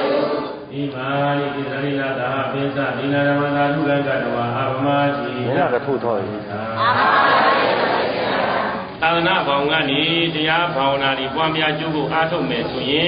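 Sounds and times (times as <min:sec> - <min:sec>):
man chanting: 0:00.7 - 0:06.8, 0:09.0 - 0:13.0.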